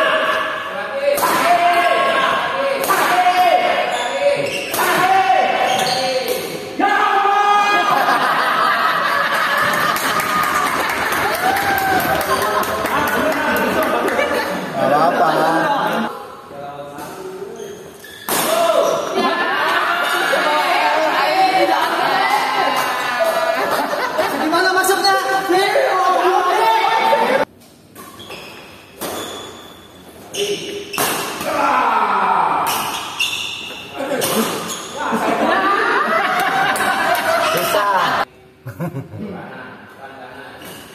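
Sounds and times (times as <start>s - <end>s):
people laughing and calling out: 7.3s - 16.4s, 18.5s - 27.5s, 33.9s - 39.8s
shoes squeaking on wooden floor: 28.2s - 30.9s
racket hitting shuttlecock: 30.9s - 31.5s.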